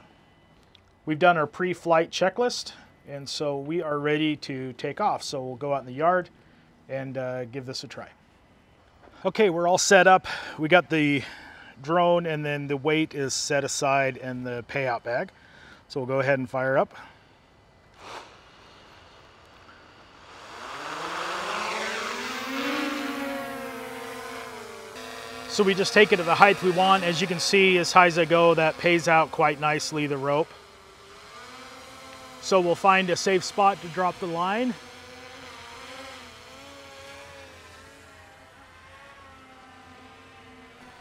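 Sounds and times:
drone propellers buzzing whine: 0:17.2 - 0:41.0.

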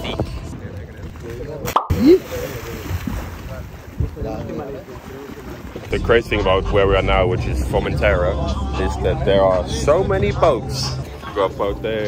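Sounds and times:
voices of people: 0:00.0 - 0:12.0
person splashing into water: 0:01.7 - 0:03.8.

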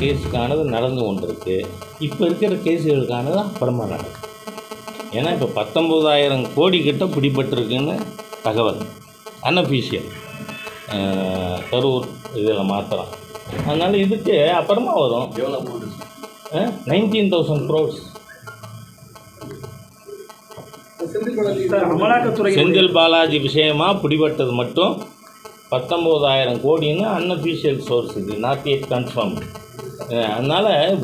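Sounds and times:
man speaking: 0:00.0 - 0:04.2, 0:10.9 - 0:18.2, 0:21.0 - 0:25.0, 0:25.7 - 0:31.0
faint steady hum: 0:00.0 - 0:31.0.

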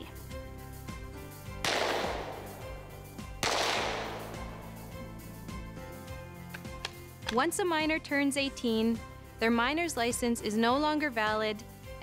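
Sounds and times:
background music: 0:00.0 - 0:12.0
rifle shots: 0:01.6 - 0:04.9.

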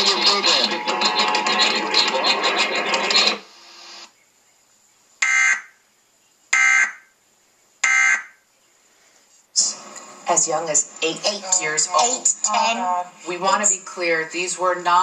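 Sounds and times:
voice and music from tv: 0:00.0 - 0:04.0, 0:09.6 - 0:15.0.

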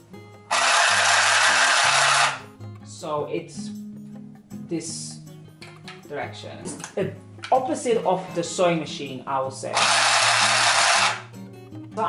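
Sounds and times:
handheld sewing machine buzzing: 0:00.5 - 0:02.4, 0:09.7 - 0:11.3.

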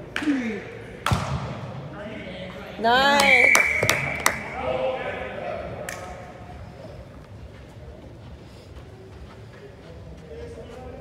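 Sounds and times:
murmur of voices in echoing hall: 0:00.0 - 0:11.0.

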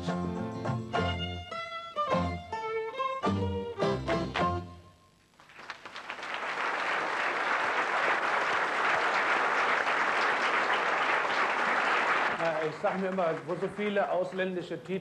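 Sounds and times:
audience applauding: 0:05.3 - 0:14.6
man speaking: 0:12.4 - 0:15.0.

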